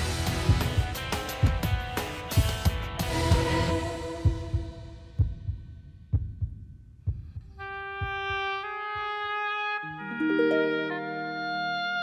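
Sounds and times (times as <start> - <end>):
low drum thumps: 0.0 - 8.3.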